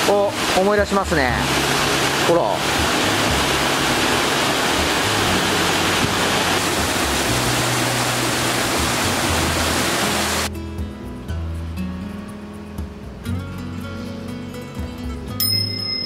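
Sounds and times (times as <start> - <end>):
water rushing over rocks: 0.0 - 10.5
background music: 0.0 - 16.0.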